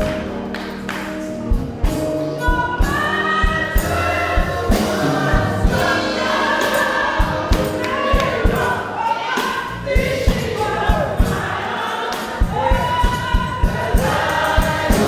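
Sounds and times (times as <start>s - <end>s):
congregation singing gospel song: 0.0s - 15.0s
live band accompaniment: 0.0s - 15.0s.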